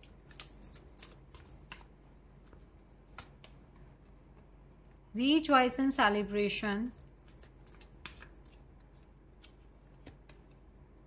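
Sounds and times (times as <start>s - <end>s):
cards clicking against each other: 7.3s - 8.6s.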